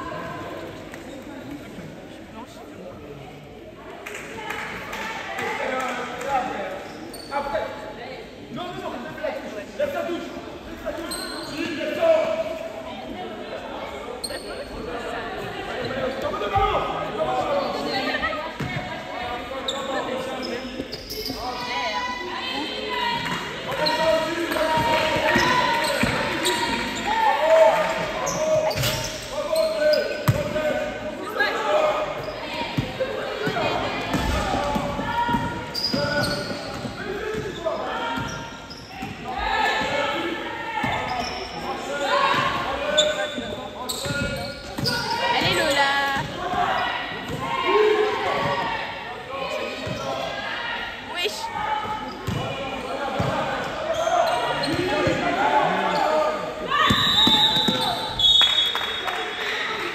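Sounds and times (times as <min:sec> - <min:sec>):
basketball bouncing in hall: 0:23.2 - 0:27.1, 0:32.2 - 0:39.8.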